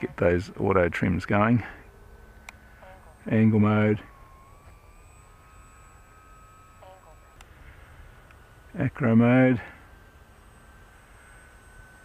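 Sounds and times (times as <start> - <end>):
model plane propeller whine: 0.0 - 12.0.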